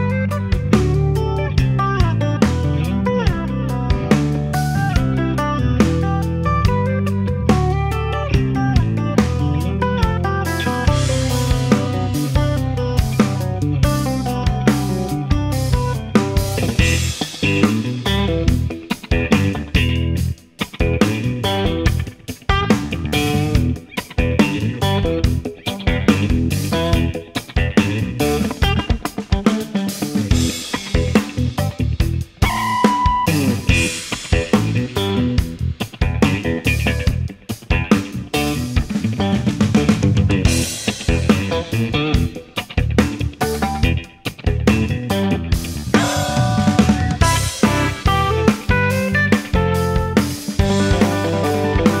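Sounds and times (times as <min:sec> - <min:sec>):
bass guitar: 0:00.0 - 0:52.0
drums: 0:00.0 - 0:52.0
electric guitar melodic runs: 0:00.0 - 0:52.0.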